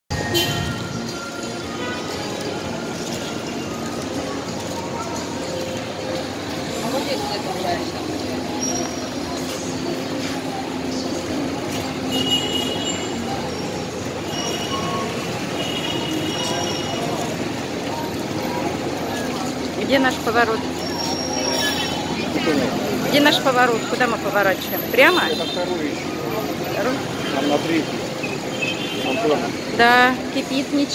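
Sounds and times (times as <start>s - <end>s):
motorbike traffic passing: 0.1s - 30.9s
murmur of voices: 0.1s - 30.9s.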